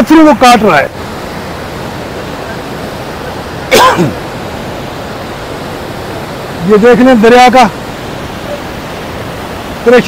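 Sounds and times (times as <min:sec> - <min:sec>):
river rushing over boulders: 0:00.0 - 0:10.0.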